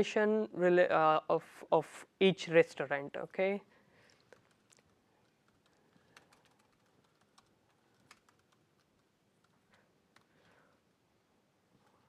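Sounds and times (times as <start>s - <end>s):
laptop keyboard typing: 4.1s - 10.8s.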